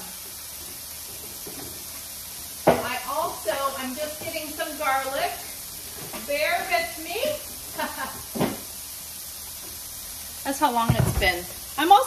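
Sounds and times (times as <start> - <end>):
tofu sizzling in oil: 0.0 - 12.0.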